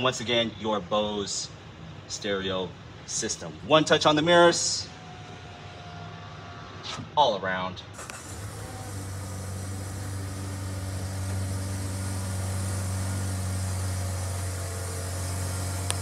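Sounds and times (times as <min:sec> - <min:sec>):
low mechanical hum: 0:00.0 - 0:16.0
faint hiss: 0:07.9 - 0:16.0.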